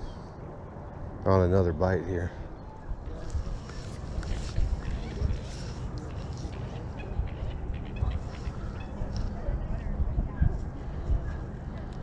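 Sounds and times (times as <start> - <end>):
wind on microphone: 2.9 - 12.0.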